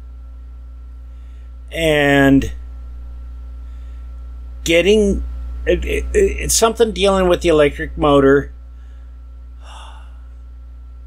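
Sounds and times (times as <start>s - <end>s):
low electrical hum: 0.0s - 11.0s
man breathing in: 1.1s - 1.6s, 3.6s - 4.1s, 8.7s - 10.4s.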